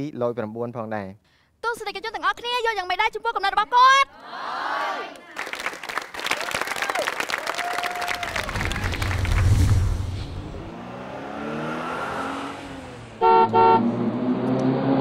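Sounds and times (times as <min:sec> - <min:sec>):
studio audience applauding: 0:05.2 - 0:09.5
deep low rumble: 0:08.2 - 0:10.8
car engine revving: 0:08.4 - 0:15.0.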